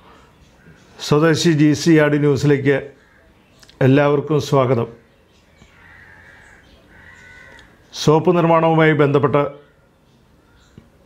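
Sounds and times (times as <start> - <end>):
faint bird calling: 2.9 - 3.8, 5.0 - 8.0.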